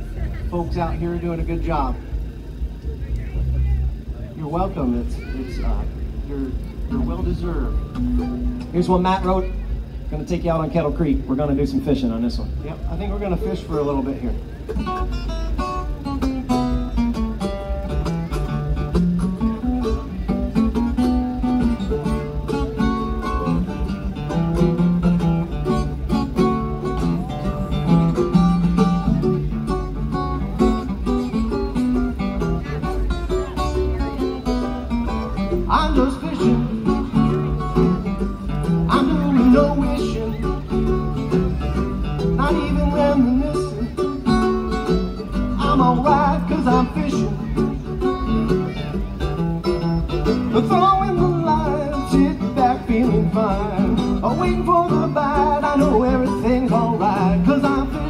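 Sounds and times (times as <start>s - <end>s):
acoustic guitar and mandolin: 0.0s - 58.0s.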